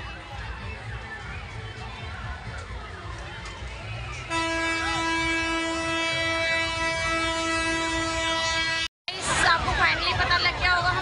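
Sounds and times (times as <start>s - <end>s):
fairground crowd noise: 0.0s - 11.0s
long steady horn blast: 4.2s - 8.9s.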